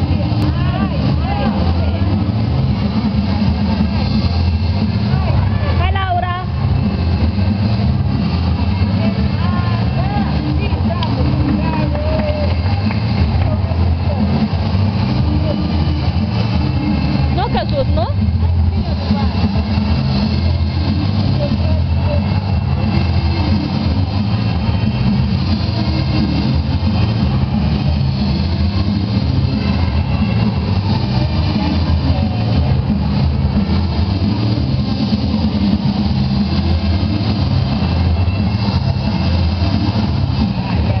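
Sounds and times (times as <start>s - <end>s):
indistinct voices: 0.0s - 41.0s
sports hall rumble: 0.0s - 41.0s.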